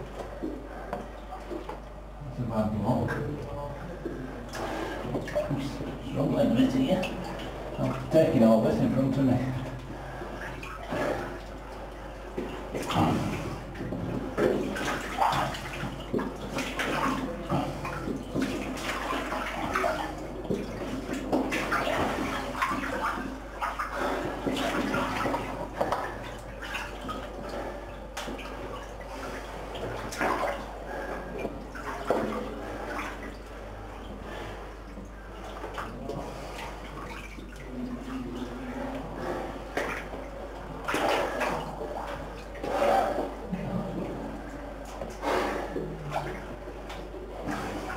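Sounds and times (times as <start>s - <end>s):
water sloshing and splashing: 0.0s - 47.9s.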